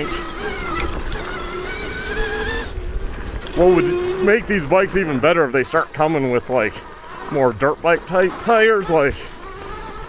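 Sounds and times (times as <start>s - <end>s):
electric motor whining: 0.0s - 10.0s
low rumble from ride: 0.0s - 10.0s.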